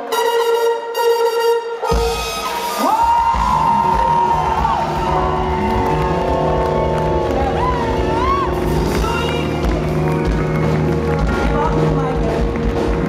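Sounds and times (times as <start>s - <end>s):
horn chord: 0.0s - 2.8s, 3.7s - 13.0s
audience cheering and whooping: 1.9s - 11.2s
drums and bass: 1.9s - 13.0s.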